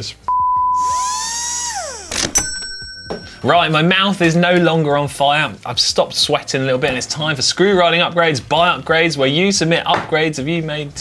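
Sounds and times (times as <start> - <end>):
test tone beep: 0.3 - 1.0
electronic whine sliding down: 0.8 - 2.4.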